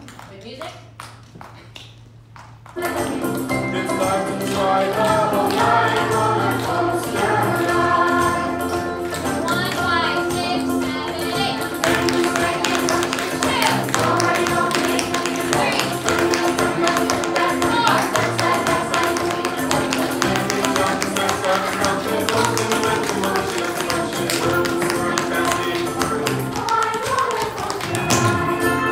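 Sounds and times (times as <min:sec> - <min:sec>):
recorded music: 0:02.8 - 0:28.9
tap shoes on hard floor: 0:11.8 - 0:28.6.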